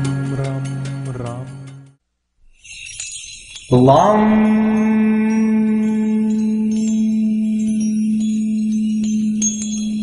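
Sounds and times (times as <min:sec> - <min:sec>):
faint high bell chimes: 0:02.5 - 0:10.0
person chanting mantra: 0:03.7 - 0:08.9.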